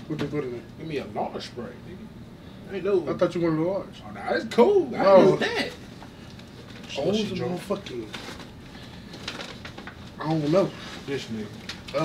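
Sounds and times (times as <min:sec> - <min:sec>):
paper bag crinkling: 0:06.6 - 0:12.0.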